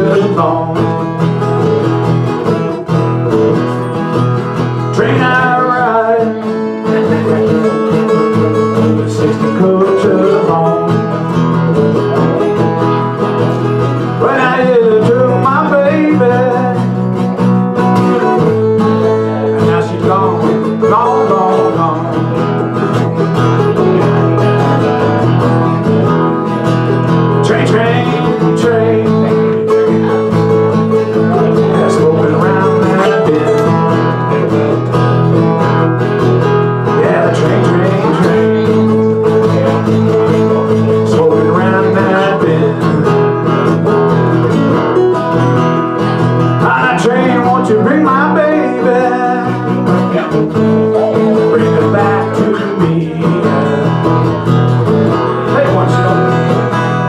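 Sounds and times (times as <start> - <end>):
guitar melodic line: 0.0 - 57.0
strummed acoustic guitar: 0.0 - 57.0.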